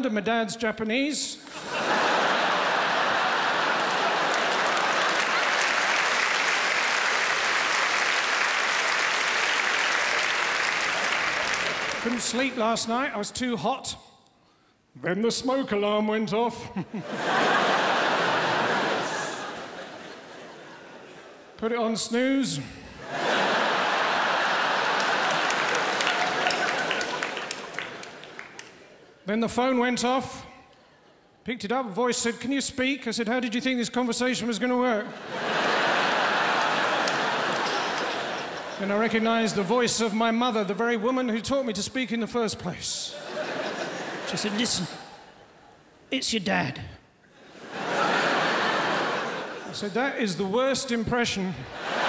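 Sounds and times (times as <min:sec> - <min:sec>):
audience laughing: 0:01.4 - 0:12.6, 0:16.8 - 0:21.6, 0:23.0 - 0:29.2, 0:35.0 - 0:40.4, 0:43.1 - 0:45.6, 0:47.3 - 0:50.0, 0:51.6 - 0:52.0
audience applauding: 0:01.5 - 0:12.6, 0:23.1 - 0:28.9, 0:35.3 - 0:39.7.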